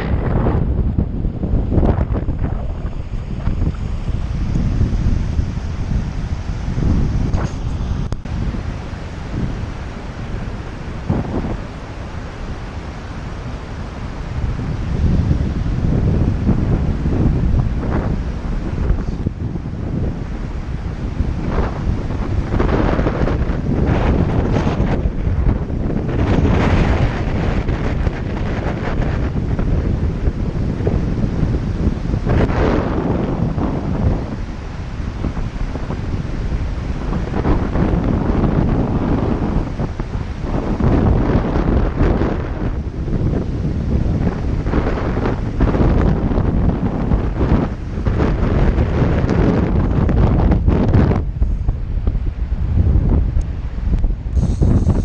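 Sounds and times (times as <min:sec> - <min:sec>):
river current rushing: 0:00.0 - 0:55.0
wind buffeting microphone: 0:00.0 - 0:55.0.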